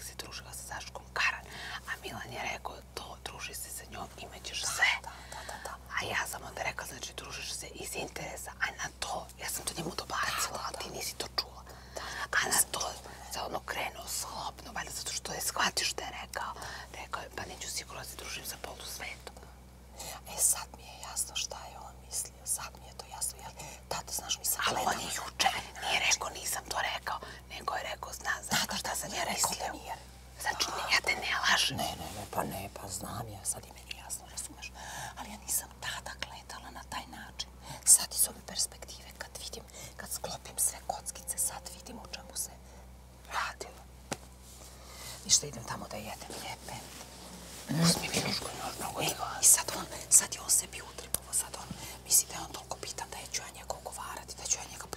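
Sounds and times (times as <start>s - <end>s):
women whispering: 0.0s - 19.4s, 20.1s - 42.6s, 43.2s - 43.8s, 45.2s - 46.9s, 47.6s - 54.9s.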